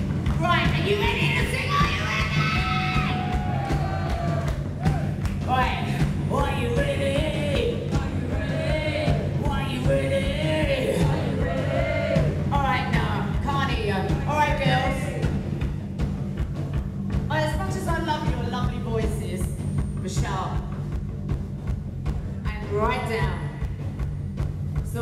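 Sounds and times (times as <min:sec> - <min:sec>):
heavy metal bass and guitar: 0:00.0 - 0:07.1.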